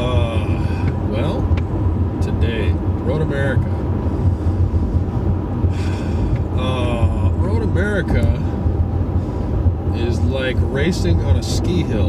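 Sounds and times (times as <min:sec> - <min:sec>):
road and tyre rumble in car: 0:00.0 - 0:12.0.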